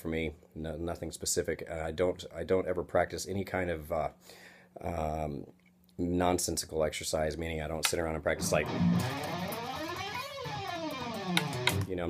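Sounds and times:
man speaking: 0:04.8 - 0:08.8
electric guitar gliding notes: 0:08.4 - 0:11.9.

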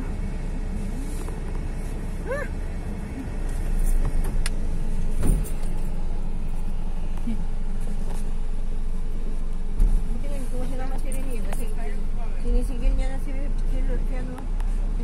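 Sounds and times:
car cabin road and engine noise: 0:00.0 - 0:15.0.

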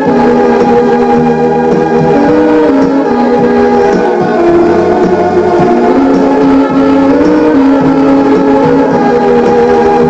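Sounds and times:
organ-like music from boombox: 0:00.0 - 0:10.0.

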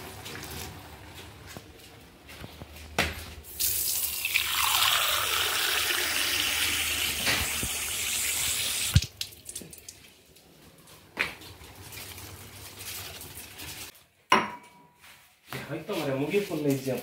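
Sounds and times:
tap water running into tumbler: 0:03.6 - 0:10.0.

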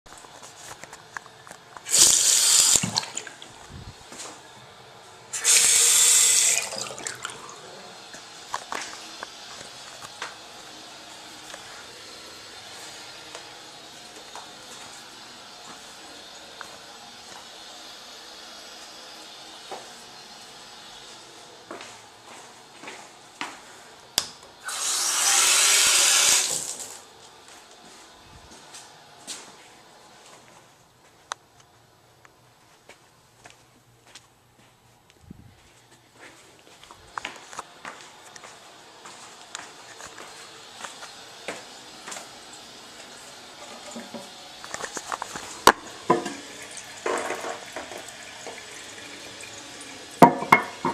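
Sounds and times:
toilet flushing: 0:01.8 - 0:04.6, 0:05.3 - 0:21.2, 0:24.6 - 0:27.1, 0:40.6 - 0:50.9
tank refilling hiss: 0:01.9 - 0:03.0, 0:05.4 - 0:07.0, 0:24.6 - 0:27.0.

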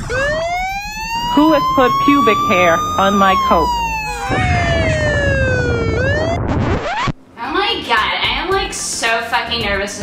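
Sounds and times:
rising siren wail: 0:00.0 - 0:07.3
person speaking: 0:01.3 - 0:03.8.

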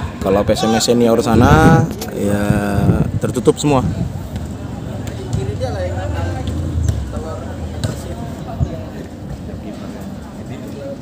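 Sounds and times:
faint voices talking: 0:00.0 - 0:11.0
low steady rumble: 0:03.9 - 0:08.8.

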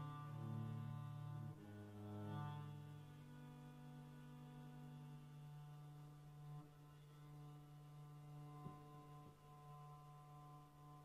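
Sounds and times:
cello bowed low note: 0:00.0 - 0:11.0.

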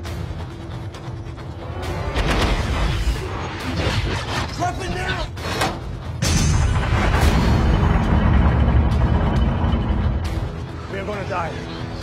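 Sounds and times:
dramatic score music: 0:00.0 - 0:12.0
heavy rumbling and booming: 0:06.2 - 0:10.3.

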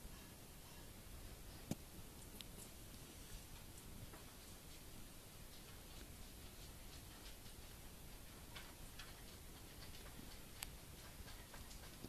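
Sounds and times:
faint small clicks: 0:01.7 - 0:03.0.

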